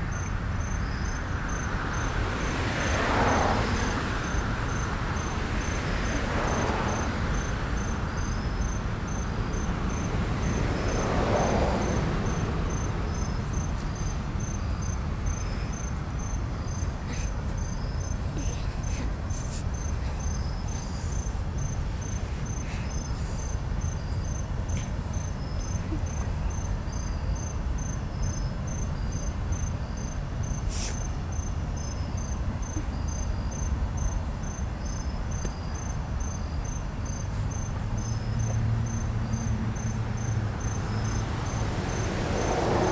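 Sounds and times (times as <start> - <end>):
crickets chirping: 0.0 - 42.9.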